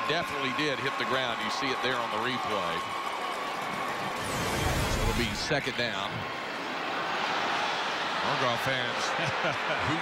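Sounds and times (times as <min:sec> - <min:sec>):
stadium background noise: 0:00.0 - 0:10.0.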